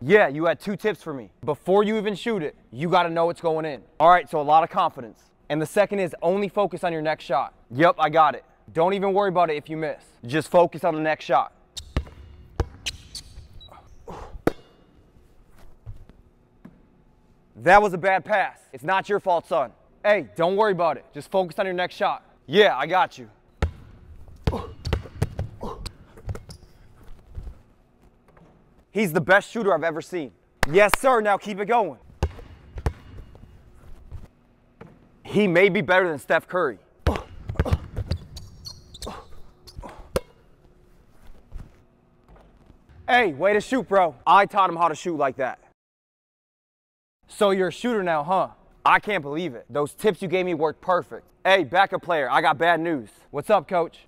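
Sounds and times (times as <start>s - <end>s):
basketball bouncing on hardwood: 11.8s - 12.9s, 23.6s - 25.6s, 32.2s - 33.4s.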